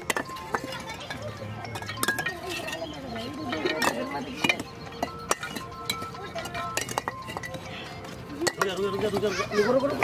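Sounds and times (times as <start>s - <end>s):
bricks knocking and clinking: 0.0s - 1.0s, 1.6s - 2.9s, 3.6s - 7.6s.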